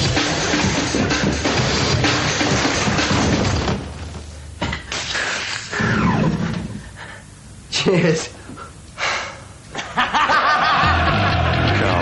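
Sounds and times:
music with steady bass beat: 0.0 - 3.8, 10.8 - 12.0
man laughing loudly: 9.8 - 11.8.

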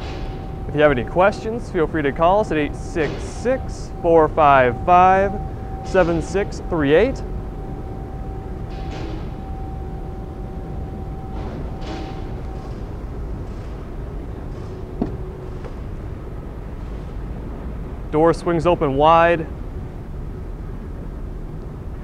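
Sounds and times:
faint steady hum: 0.0 - 22.0
low room rumble: 0.0 - 22.0.

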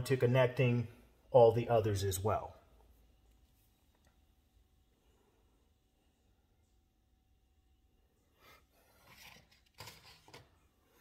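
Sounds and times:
rustling and scraping handling noises: 8.4 - 11.0.

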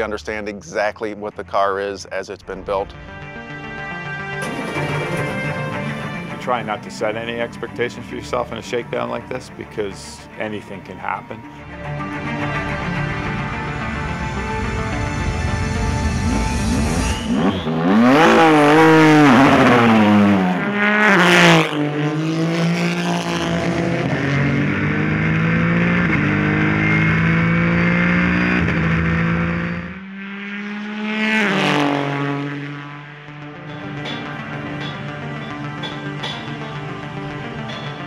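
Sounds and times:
race car engine passing by: 1.3 - 38.0.

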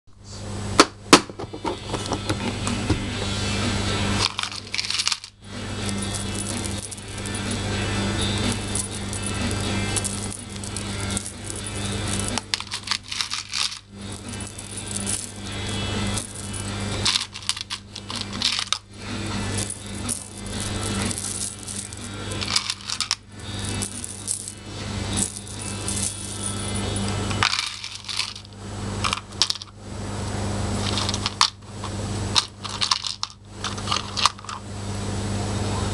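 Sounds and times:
steady low hum: 0.1 - 35.9
metal charms clinking: 4.2 - 29.7, 30.8 - 31.6, 32.4 - 34.6.

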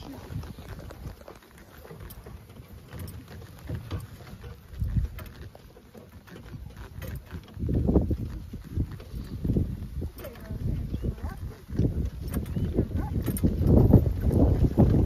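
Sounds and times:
cart rumbling and thumping: 0.0 - 15.0
muffled hoofbeats on grass: 0.0 - 15.0.

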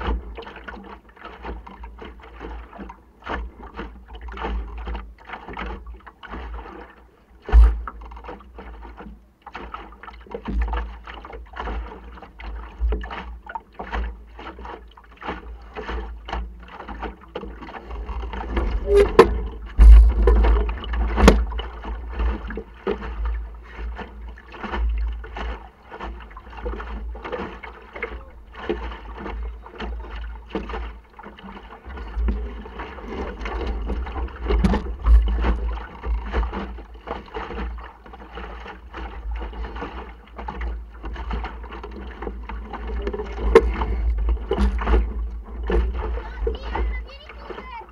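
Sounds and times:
knocks and taps from boat rigging: 0.0 - 47.9
water lapping against boat hull: 0.0 - 47.9.

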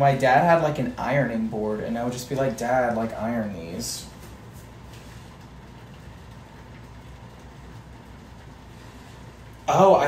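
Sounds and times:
garment steamer hissing and humming: 0.0 - 10.0.

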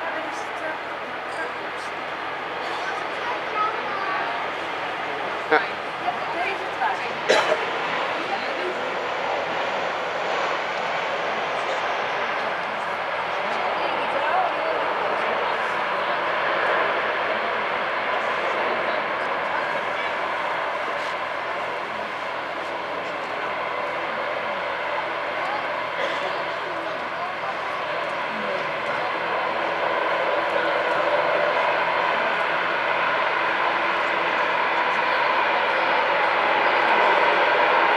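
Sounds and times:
aircraft engine noise: 0.0 - 37.9.

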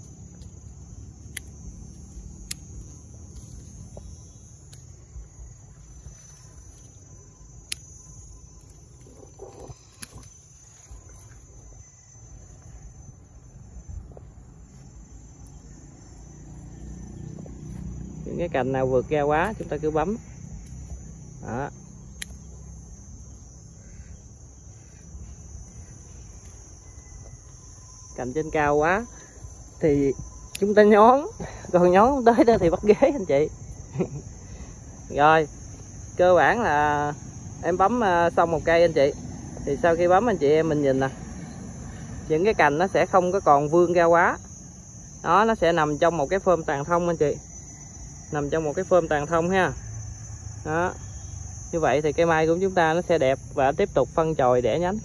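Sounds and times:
insects chirring: 0.0 - 55.0
pruning scissors snipping: 1.2 - 3.6, 22.1 - 22.5, 30.5 - 30.8.

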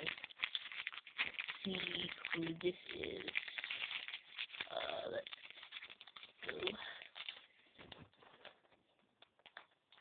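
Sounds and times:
person speaking: 0.0 - 0.2, 1.6 - 3.8, 4.6 - 5.5, 6.3 - 7.2
plastic wrapper crinkling: 0.0 - 10.0.

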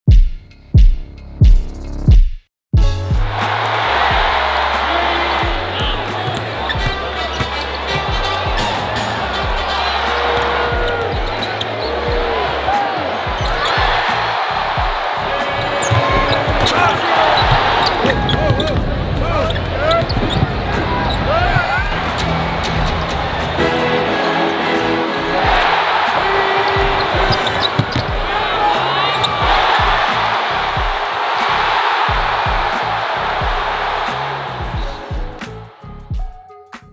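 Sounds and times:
background music: 2.8 - 18.1, 21.4 - 36.9
crowd noise: 3.3 - 35.8
shouted voices: 3.4 - 35.2
sneakers squeaking on hardwood: 5.9 - 12.2, 15.6 - 18.8, 19.4 - 23.2, 26.6 - 30.0
basketball bouncing: 26.7 - 28.3.

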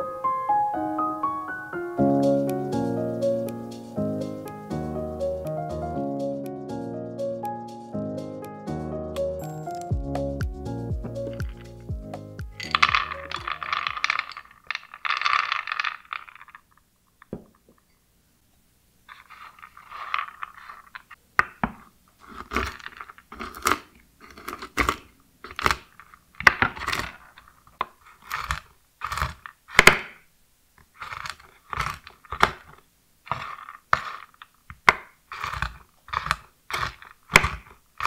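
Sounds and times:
background music: 0.0 - 14.0
nuts clattering on wooden board: 11.0 - 11.9, 12.6 - 17.9, 19.1 - 30.2, 30.8 - 38.0.

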